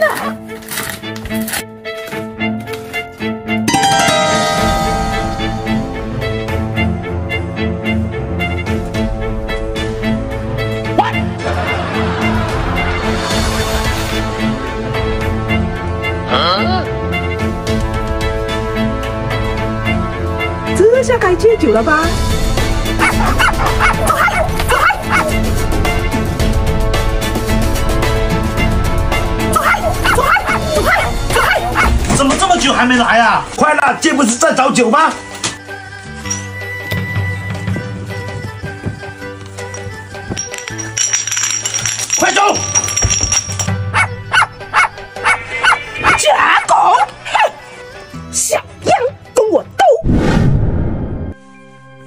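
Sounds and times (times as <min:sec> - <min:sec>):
background music: 0:00.0 - 0:52.0
puppy yipping and barking: 0:23.0 - 0:25.4, 0:29.6 - 0:32.0, 0:44.0 - 0:47.6.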